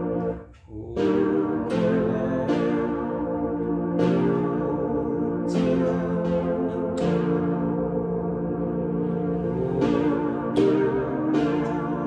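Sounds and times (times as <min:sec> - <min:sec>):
keyboard chords: 0:00.0 - 0:12.0.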